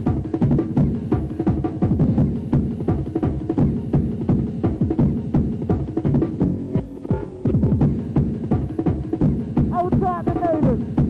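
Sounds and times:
fast rave music: 0:00.0 - 0:11.0
swooping deep bass line: 0:06.2 - 0:08.3.

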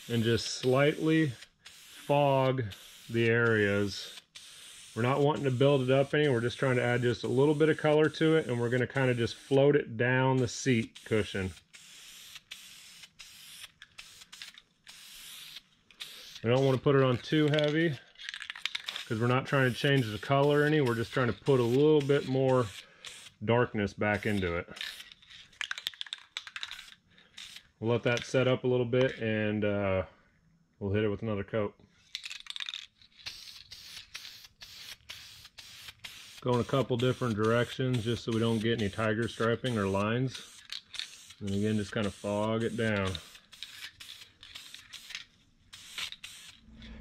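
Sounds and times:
spray paint can hissing: 0:00.0 - 0:09.6, 0:10.4 - 0:17.8, 0:18.5 - 0:23.3, 0:24.1 - 0:25.1, 0:25.7 - 0:27.6, 0:32.2 - 0:46.7.

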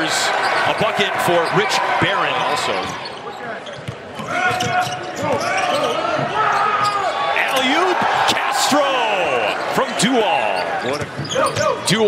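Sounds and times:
players and crowd voices: 0:00.0 - 0:12.0.

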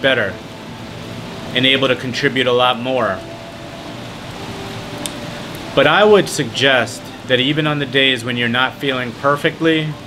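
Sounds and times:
steady background hiss: 0:00.0 - 0:10.0
man speaking: 0:01.5 - 0:03.3, 0:05.7 - 0:10.0.

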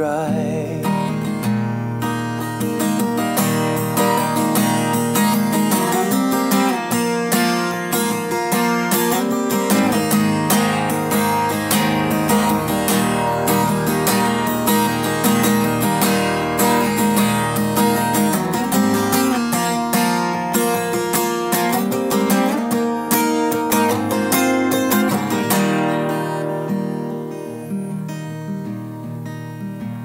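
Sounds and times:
acoustic guitar strumming chords: 0:00.0 - 0:30.0.

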